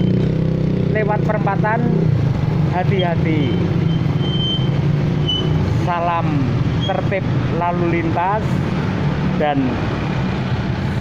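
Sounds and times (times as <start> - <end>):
vehicle engine drone: 0.0 - 11.0
man's voice: 2.7 - 3.6.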